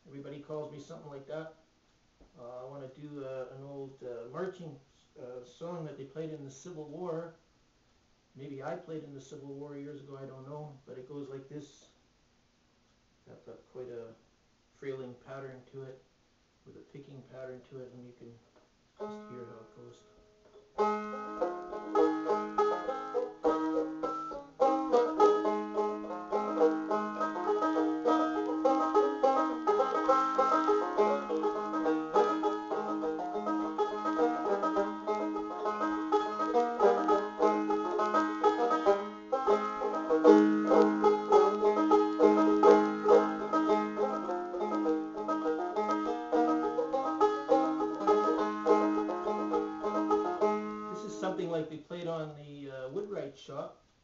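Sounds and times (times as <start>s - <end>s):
banjo frailing and picking: 0.0s - 1.6s, 2.4s - 7.4s, 19.0s - 53.6s.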